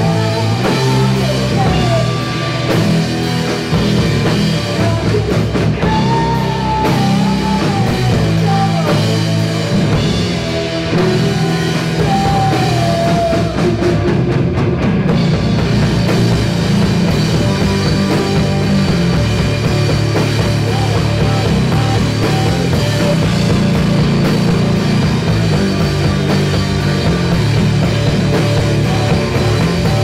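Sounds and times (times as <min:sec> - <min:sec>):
drum kit: 0:00.0 - 0:30.0
electric guitars: 0:00.0 - 0:30.0.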